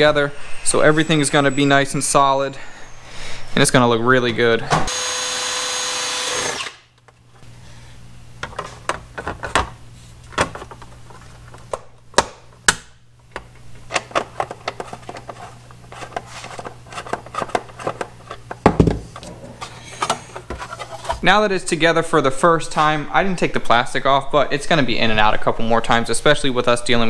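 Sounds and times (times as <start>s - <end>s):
low steady hum: 0.0s - 4.9s
power drill running: 4.9s - 6.8s.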